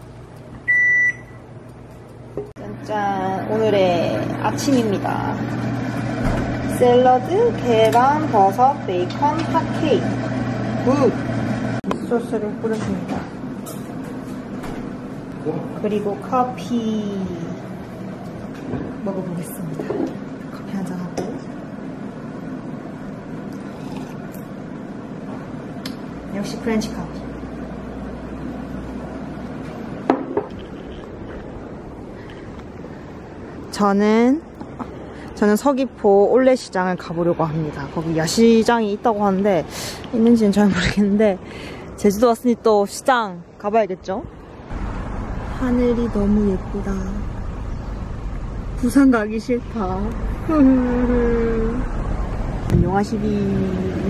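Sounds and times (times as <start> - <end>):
low steady hum: 0.0 - 54.0
short electronic beep: 0.7 - 1.4
coffee sipping: 30.5 - 32.9.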